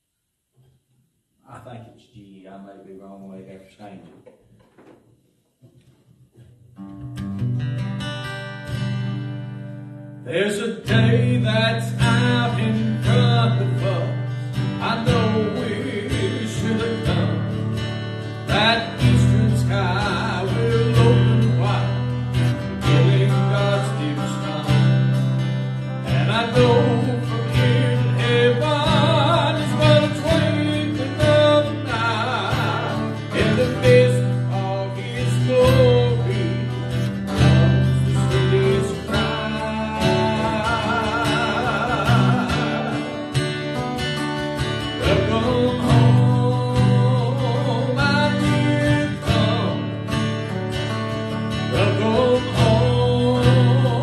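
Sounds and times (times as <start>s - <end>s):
strummed acoustic guitar: 6.3s - 54.0s
man singing with vibrato: 10.2s - 50.4s, 51.5s - 54.0s.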